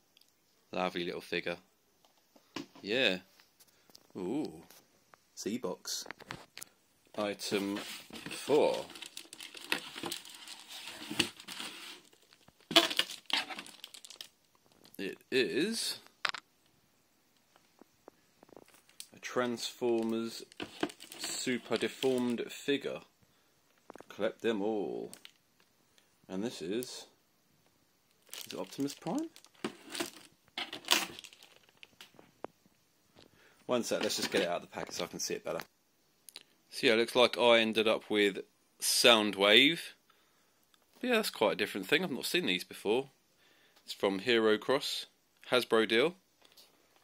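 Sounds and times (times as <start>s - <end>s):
cardboard rustling: 7.2s - 14.8s, 19.5s - 22.4s, 28.3s - 32.0s, 33.8s - 34.6s
plastic packaging crinkling: 7.4s - 15.0s, 18.4s - 22.5s, 28.1s - 32.2s.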